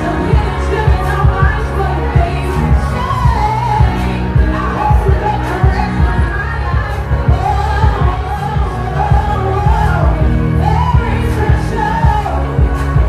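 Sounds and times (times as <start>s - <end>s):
bass-heavy backing track: 0.0s - 13.0s
woman singing into microphone: 0.0s - 13.0s.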